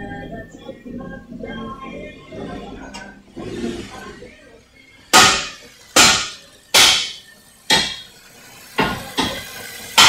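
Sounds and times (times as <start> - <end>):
loud sharp knocks: 5.2 - 8.0.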